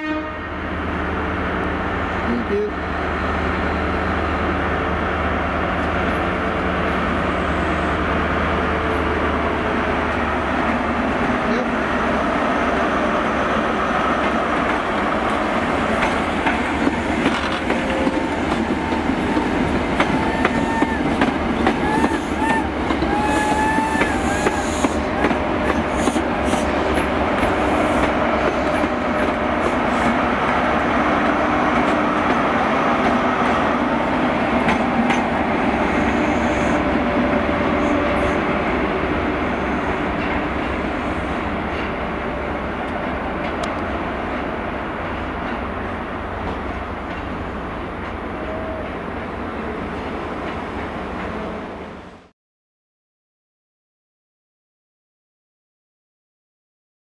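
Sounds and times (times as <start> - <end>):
diesel train engine running: 0.6 - 49.5
train wheels rumbling on rails: 0.6 - 52.3
wheels clicking over rail joints: 14.2 - 20.6.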